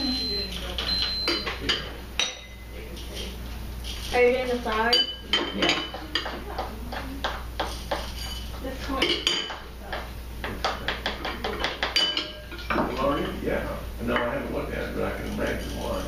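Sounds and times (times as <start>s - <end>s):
spoons clinking against bowls: 0.0s - 13.4s.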